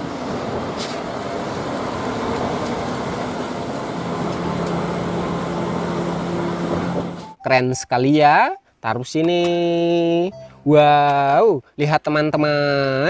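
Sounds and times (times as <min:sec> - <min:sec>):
deep steady engine note: 0:00.0 - 0:07.4
road noise: 0:00.0 - 0:07.4
truck diesel engine passing: 0:00.0 - 0:07.4.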